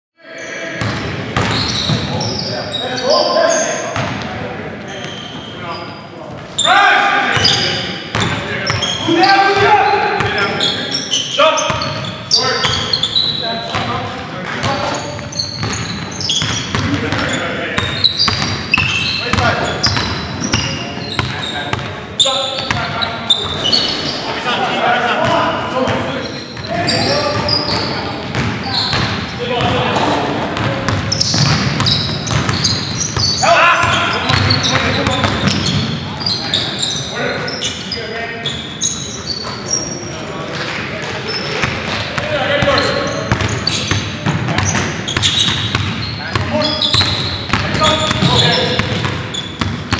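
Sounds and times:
players' voices: 0:00.2 - 0:49.9
sneakers squeaking: 0:00.3 - 0:24.6, 0:25.2 - 0:49.9
basketball bouncing: 0:00.8 - 0:02.1, 0:13.7 - 0:21.9, 0:27.3 - 0:36.0, 0:41.6 - 0:49.9
basketball bouncing on hardwood: 0:30.6 - 0:32.9
people shouting: 0:33.4 - 0:34.2.

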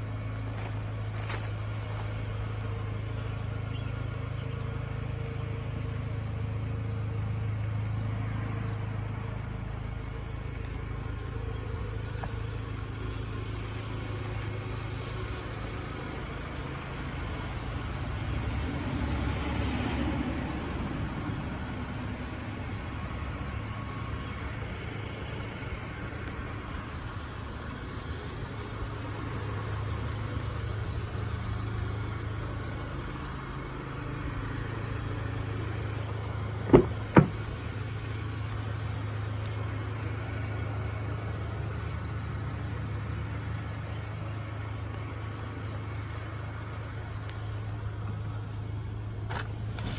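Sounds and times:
vehicle engine idling: 0:00.0 - 0:49.9.

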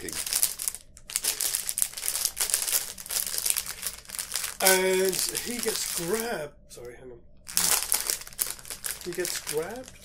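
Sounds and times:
plastic snack packet crinkling: 0:00.0 - 0:06.3, 0:07.5 - 0:10.0.

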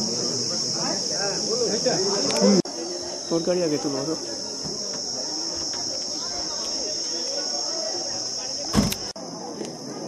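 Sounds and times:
high-pitched insect drone: 0:00.0 - 0:09.0
faint voices murmuring: 0:00.0 - 0:10.0.

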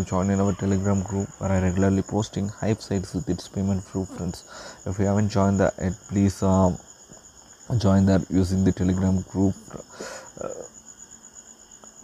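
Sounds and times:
man saying uh: 0:00.0 - 0:06.8, 0:07.7 - 0:10.7.

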